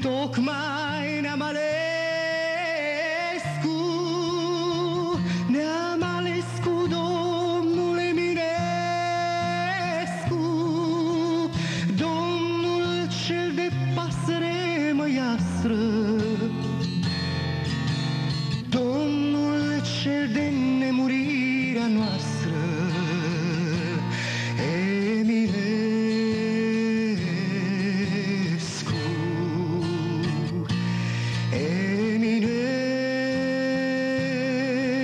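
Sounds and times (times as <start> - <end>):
man singing: 0.0 - 17.2, 17.9 - 35.0
guitar accompaniment: 0.0 - 35.0.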